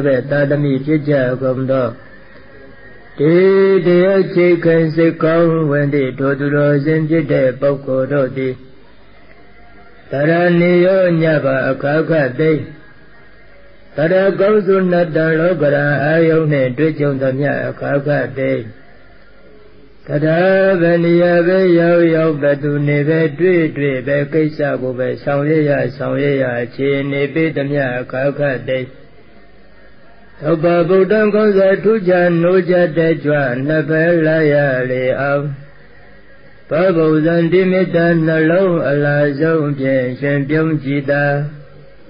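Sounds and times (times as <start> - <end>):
man chanting: 0.0 - 8.9, 10.0 - 13.3, 13.9 - 18.9, 20.0 - 29.1, 30.3 - 42.0.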